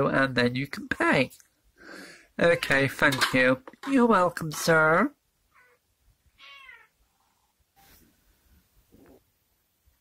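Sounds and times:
cat meowing: 5.5s - 7.0s.

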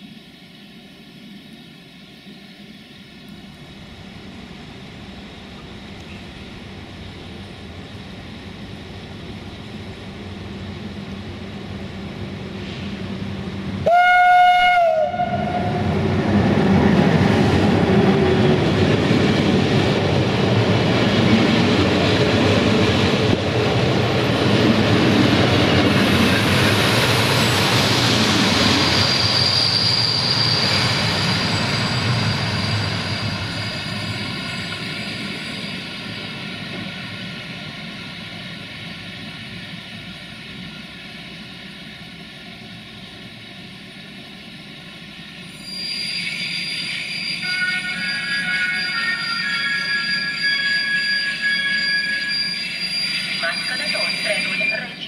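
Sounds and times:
train coaches rolling on rails: 14.8s - 55.0s
brakes and wheels squealing: 25.6s - 37.2s, 45.2s - 55.0s.

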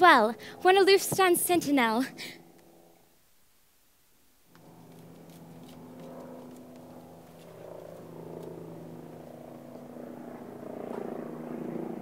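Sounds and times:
woman's voice: 0.0s - 2.4s
faint outdoor ambience: 0.0s - 12.0s.

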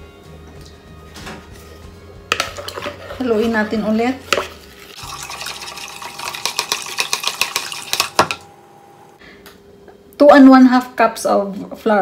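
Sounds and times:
spatula scraping plastic bowl: 2.3s - 4.6s.

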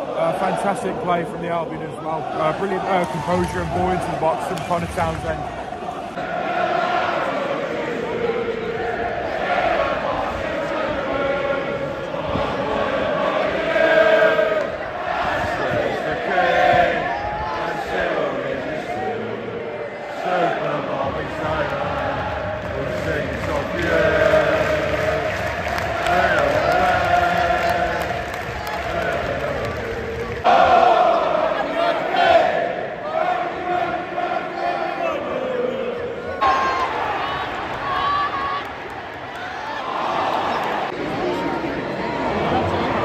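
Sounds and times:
crowd singing and chanting: 0.0s - 43.0s.

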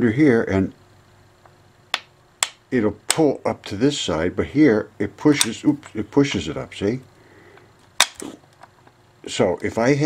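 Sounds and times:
magnets snapping together: 7.8s - 8.7s.

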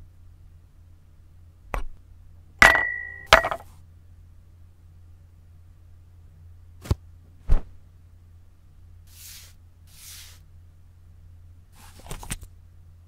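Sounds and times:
glass ringing: 2.6s - 3.6s.

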